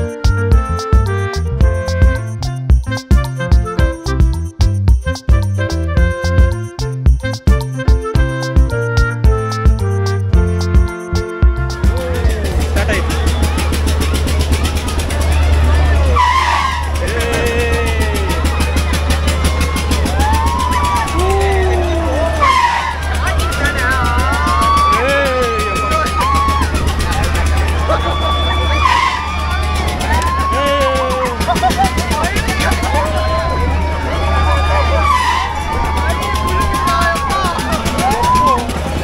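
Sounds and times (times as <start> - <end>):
riders shouting and screaming: 11.9 - 39.0.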